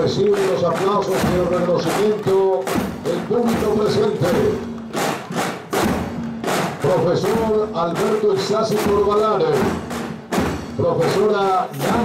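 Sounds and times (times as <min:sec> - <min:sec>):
snare drums marching rhythm: 0:00.0 - 0:12.0.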